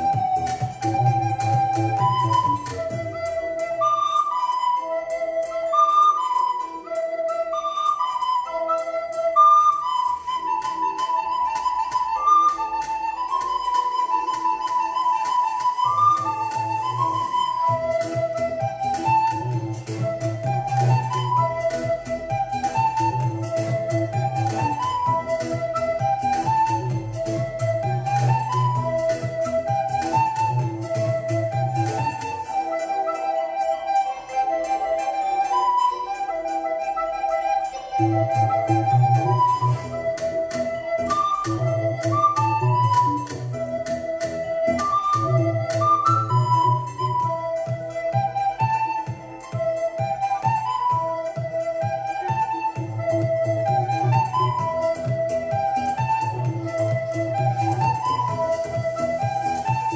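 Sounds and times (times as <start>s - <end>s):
backing track with a beat: 0.0s - 59.9s
recorder melody: 0.0s - 59.9s.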